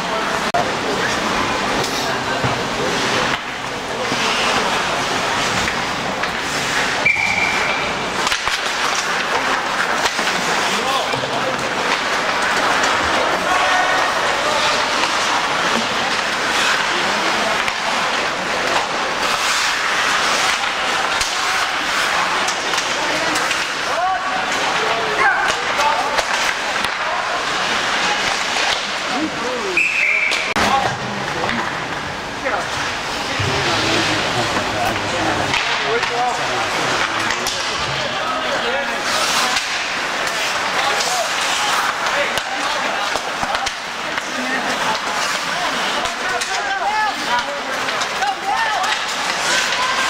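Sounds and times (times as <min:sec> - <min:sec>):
skates scraping ice: 0:00.0 - 0:50.0
hockey sticks and puck knocking: 0:01.7 - 0:29.1, 0:30.2 - 0:38.2, 0:38.9 - 0:50.0
din of shouting voices: 0:07.1 - 0:19.0, 0:19.9 - 0:31.7, 0:32.5 - 0:50.0.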